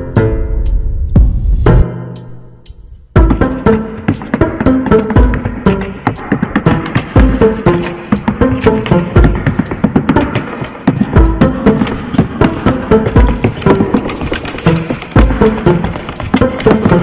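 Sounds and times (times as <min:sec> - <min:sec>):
backing music with deep beat: 0:00.0 - 0:17.0
boots tap-dancing on wooden boards: 0:03.2 - 0:17.0.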